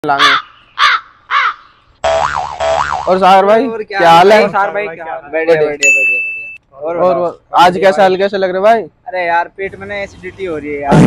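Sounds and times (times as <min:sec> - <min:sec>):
crow cawing: 0:00.2 - 0:01.8.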